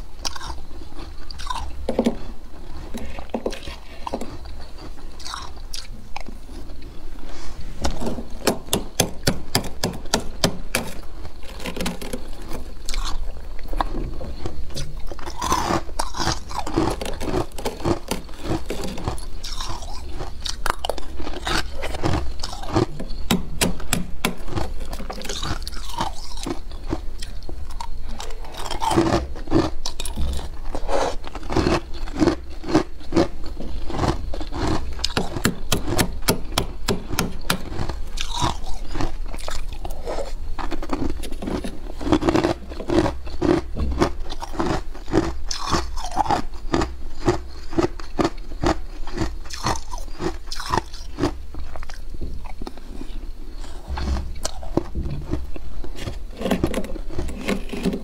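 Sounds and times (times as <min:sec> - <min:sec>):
crunching frost being chewed: 0:00.0 - 0:58.0
frost being scraped: 0:07.2 - 0:08.4, 0:56.0 - 0:58.0.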